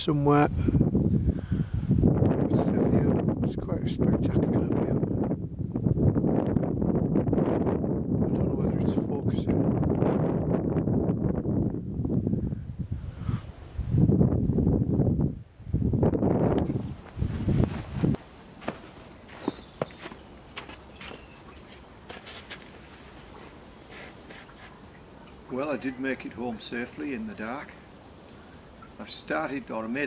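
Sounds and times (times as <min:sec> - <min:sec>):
wind buffeting microphone: 0:00.0 - 0:25.8
footsteps walking downhill: 0:16.7 - 0:25.0.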